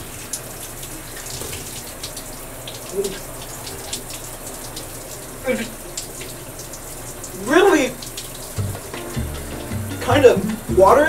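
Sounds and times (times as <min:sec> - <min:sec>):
shower water spraying: 0:00.0 - 0:11.0
background music with bass: 0:08.6 - 0:11.0.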